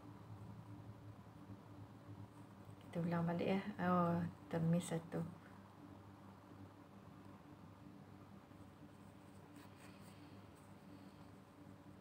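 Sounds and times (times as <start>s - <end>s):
faint steady hum: 0.0s - 12.0s
crochet hook rustling yarn: 8.5s - 12.0s.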